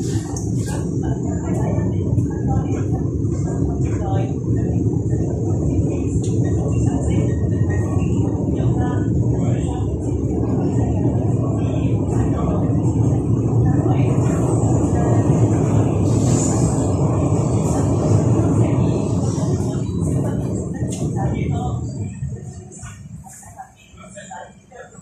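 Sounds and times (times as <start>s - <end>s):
train wheels rumbling on track: 0.0s - 24.9s.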